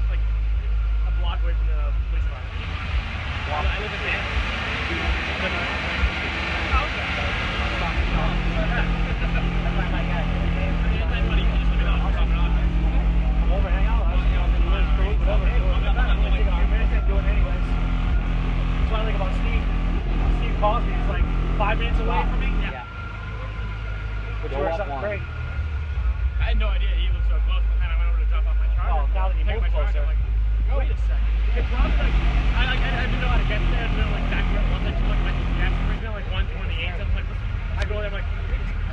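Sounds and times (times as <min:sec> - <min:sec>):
subwoofers playing deep bass: 0:00.0 - 0:38.9.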